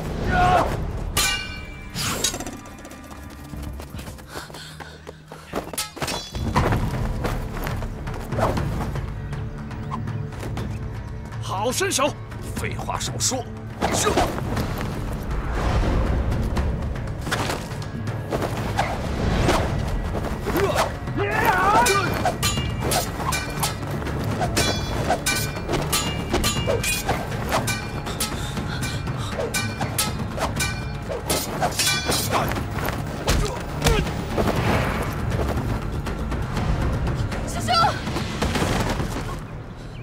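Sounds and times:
film music score: 0:00.0 - 0:40.0
people shouting: 0:00.2 - 0:00.8, 0:20.5 - 0:22.4.

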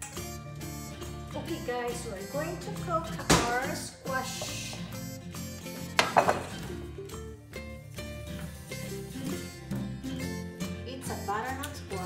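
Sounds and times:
background music: 0:00.0 - 0:12.0
metal pan clanking on counter: 0:06.0 - 0:06.6.

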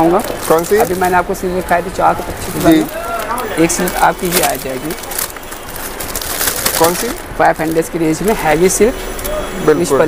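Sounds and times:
person speaking: 0:00.0 - 0:05.2, 0:06.6 - 0:10.0
plastic packaging crinkling: 0:00.0 - 0:09.3.

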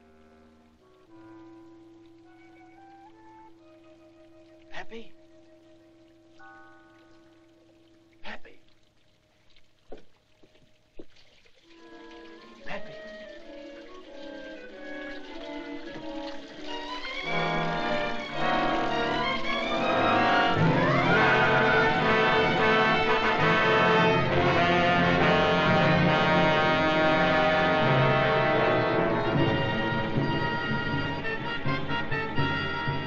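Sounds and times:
orchestral film music: 0:00.0 - 0:08.6, 0:11.7 - 0:33.0.

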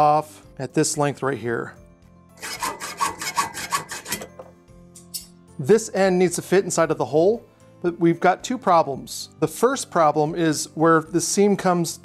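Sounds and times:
hacksaw cutting metal tube: 0:02.4 - 0:05.3.

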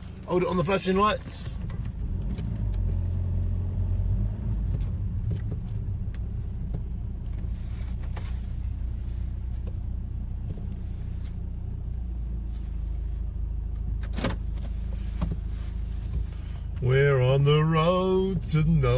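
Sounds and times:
car engine and road rumble: 0:00.0 - 0:18.9.

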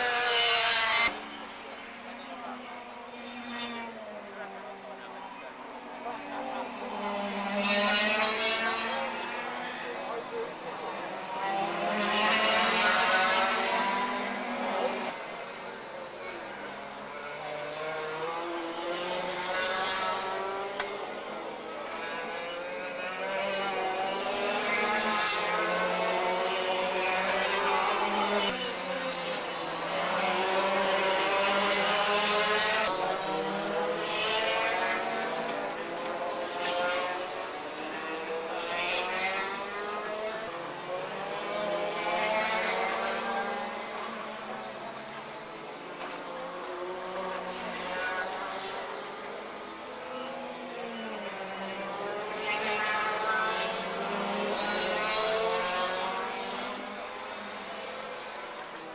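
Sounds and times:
kart engines revving: 0:00.0 - 0:58.9.

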